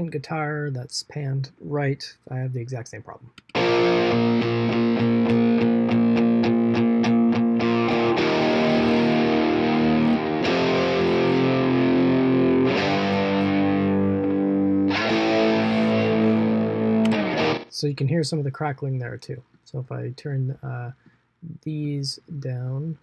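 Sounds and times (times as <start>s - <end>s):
distorted electric guitar: 3.4s - 17.8s.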